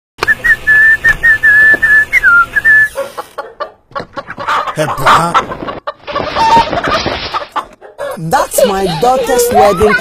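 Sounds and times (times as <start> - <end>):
high whistling notes: 0.2 - 3.0.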